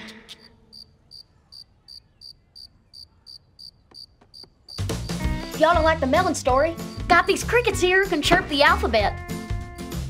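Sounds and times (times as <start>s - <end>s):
crickets chirping: 0.3s - 5.2s.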